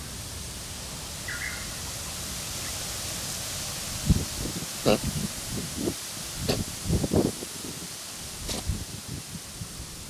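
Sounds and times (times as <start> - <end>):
outdoor ambient hiss: 0.0 - 10.0.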